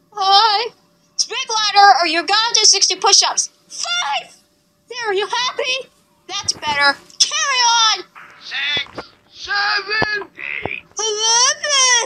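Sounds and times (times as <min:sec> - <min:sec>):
squeaky cartoon voices: 0:06.4 - 0:12.0.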